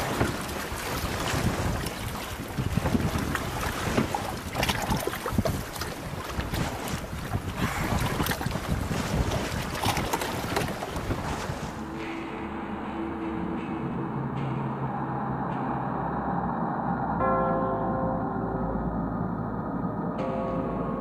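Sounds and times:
wind buffeting microphone: 0.0 - 17.3
water splashing against hull: 0.0 - 17.4
boat moving over choppy water: 0.0 - 21.0.

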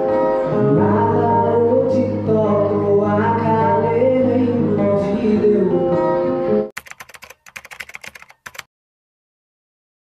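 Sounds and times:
acoustic guitar song with singing: 0.0 - 6.7
keyboard typing clicks: 6.8 - 8.7.

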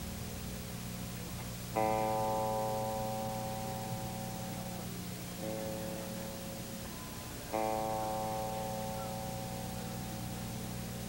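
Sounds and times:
low amplifier hum: 0.0 - 11.0
electric guitar struck and ringing: 1.7 - 11.0.

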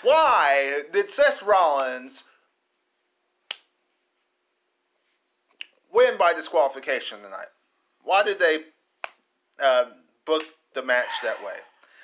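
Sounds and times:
man speaking: 0.0 - 2.4, 5.9 - 8.8, 9.6 - 11.8.

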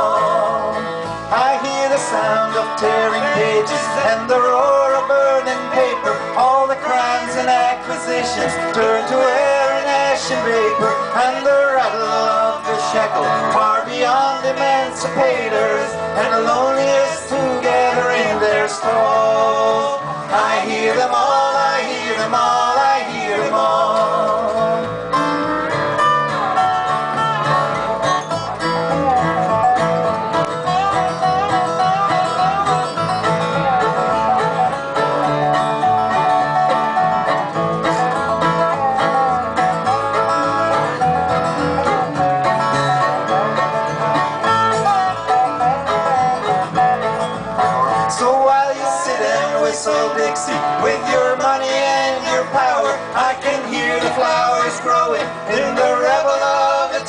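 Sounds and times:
fiddle and dobro melody: 0.0 - 57.0
plucked upright bass: 0.0 - 57.0
strummed acoustic guitar: 0.0 - 57.0.

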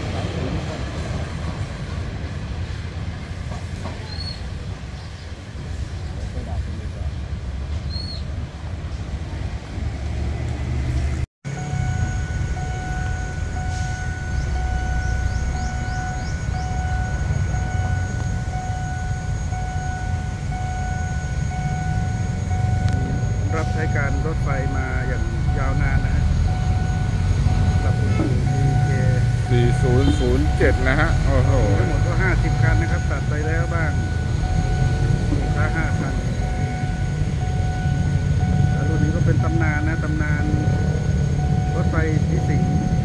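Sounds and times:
diesel locomotive rumble: 0.0 - 43.0
train coaches rumbling past: 0.0 - 43.0
pulsing high tone: 11.5 - 43.0.

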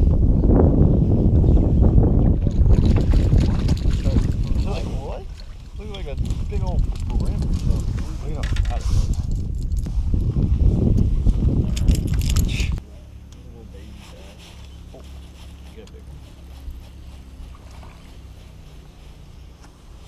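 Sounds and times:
wind rumbling on microphone: 0.0 - 12.8.

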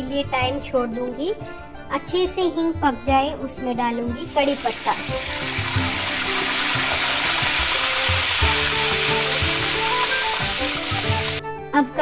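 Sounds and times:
leaves sizzling in hot oil: 4.3 - 11.4.

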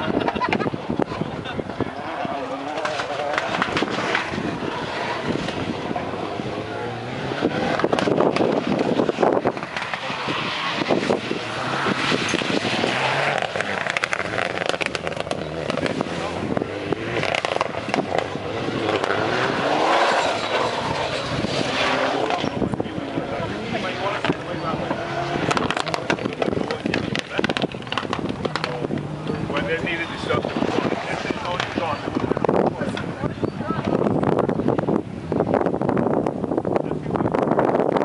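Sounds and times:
rally car engine revving: 0.0 - 38.0.

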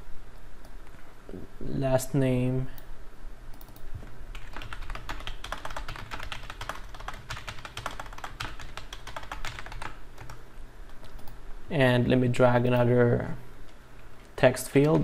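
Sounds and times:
typing on computer keyboard: 3.6 - 11.4, 14.7 - 15.0.

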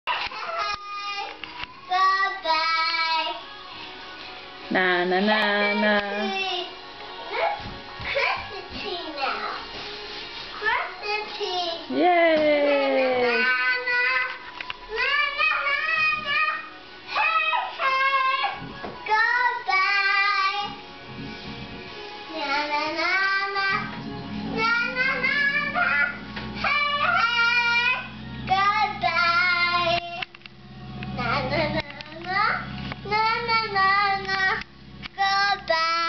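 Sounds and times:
small child singing: 0.1 - 3.4, 6.0 - 6.8, 10.6 - 12.0, 12.7 - 20.8, 22.3 - 30.4, 31.2 - 34.6, 35.2 - 36.0.

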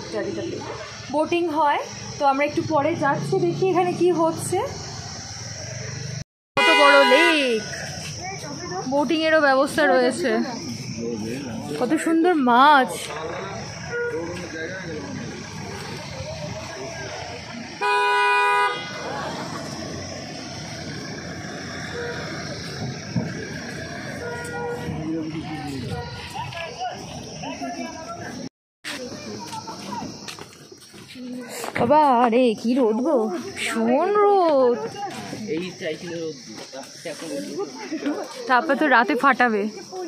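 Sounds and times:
insects hissing in trees: 0.0 - 40.0
outdoor background murmur: 0.0 - 40.0
vehicle horn honk: 6.6 - 7.7, 13.8 - 14.4, 17.8 - 19.0, 24.2 - 24.9
faint voices talking: 6.7 - 40.0.

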